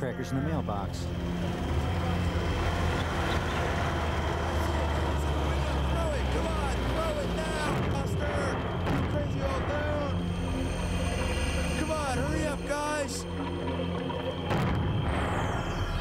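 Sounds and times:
vehicle engine humming: 0.0s - 16.0s
young men shouting jeers: 5.3s - 8.5s.

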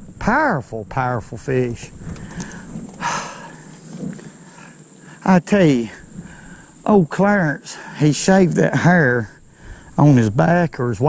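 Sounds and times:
outdoor background noise: 0.0s - 11.0s
person exhaling: 2.2s - 5.2s, 9.5s - 10.0s.

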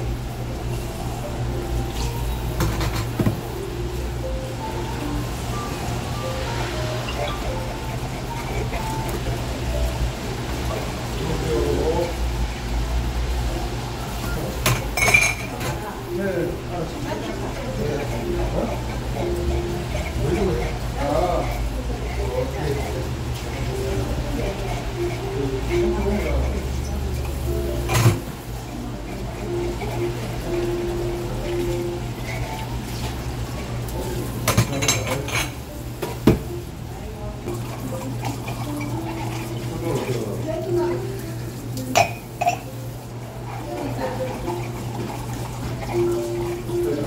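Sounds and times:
running tap water: 0.0s - 47.0s
ceramic mugs clinking: 14.6s - 15.8s, 34.4s - 36.4s, 41.9s - 42.8s.

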